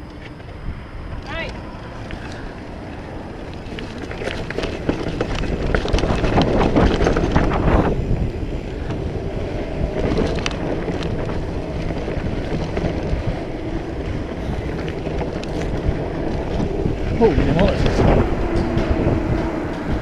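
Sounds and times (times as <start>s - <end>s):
bike rattling: 0.0s - 20.0s
wind rushing on microphone: 0.0s - 20.0s
tyres crunching over stones: 2.1s - 7.9s.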